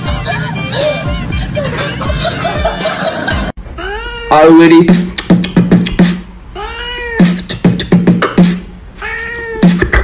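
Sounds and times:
person beatboxing: 4.9 - 6.3, 7.2 - 8.7, 9.6 - 10.0
cat meowing: 6.6 - 7.4, 9.0 - 9.8.

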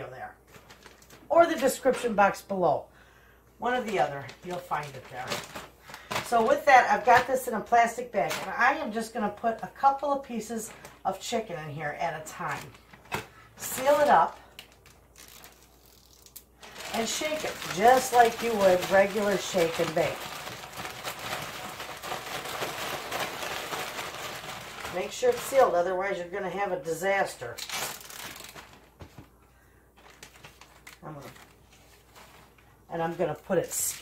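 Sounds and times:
plastic zipper bag crinkling: 0.4 - 2.0, 3.6 - 7.4, 8.2 - 26.3, 27.3 - 29.2, 30.0 - 34.0
plastic rustling: 0.4 - 2.4, 3.6 - 26.6, 27.2 - 34.0.

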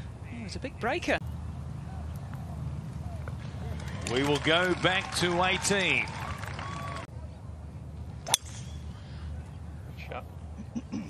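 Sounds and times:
golf club striking ball: 8.2 - 8.8.

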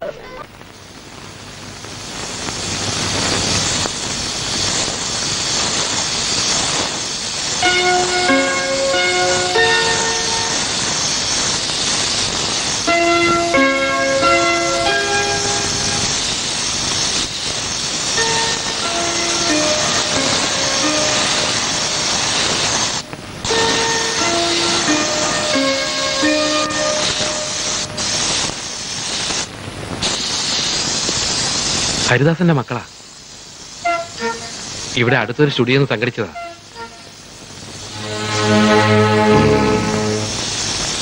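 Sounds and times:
paint spray gun hissing: 2.6 - 32.1, 32.9 - 35.0, 39.4 - 41.0
slow melody of held notes: 7.6 - 11.0, 12.9 - 16.3, 18.2 - 28.6, 33.9 - 34.7, 37.8 - 40.5.

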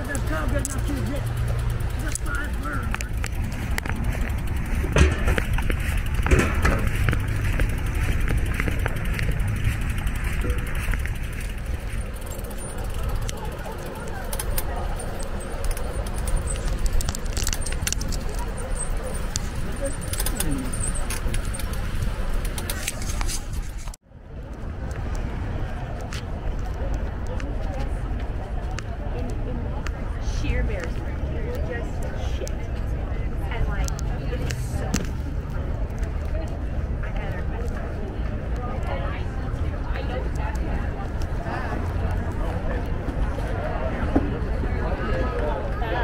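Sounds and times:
low rumble: 0.0 - 22.5
scattered clicks: 0.0 - 32.9
faint voices: 0.0 - 46.0.

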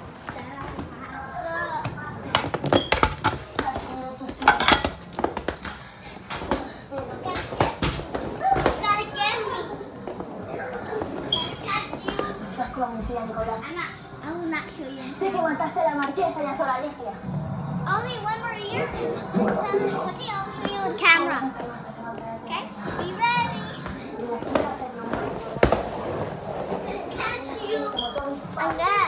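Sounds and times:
children's voices: 0.0 - 2.6, 6.5 - 12.8, 17.8 - 29.0.

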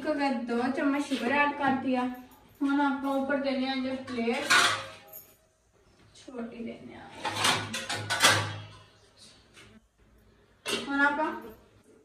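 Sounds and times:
metal utensils and pots clattering: 0.9 - 5.5, 7.0 - 9.8, 10.6 - 11.8.

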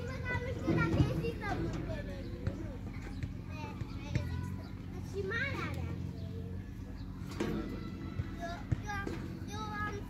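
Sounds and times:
young children's voices at play: 0.0 - 10.0.

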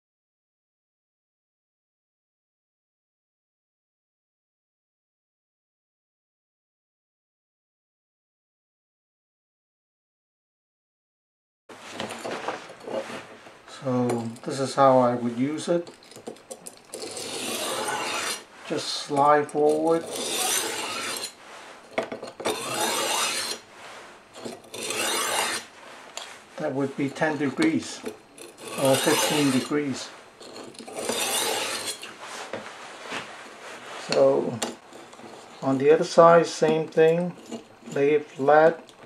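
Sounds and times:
knife scraping sharpening stone: 16.9 - 18.5, 19.7 - 21.4, 22.4 - 23.7, 24.4 - 26.3, 27.3 - 32.2, 37.2 - 38.2.

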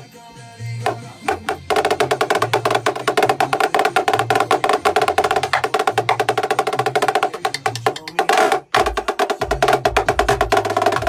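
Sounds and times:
snare drum solo: 1.2 - 11.0.

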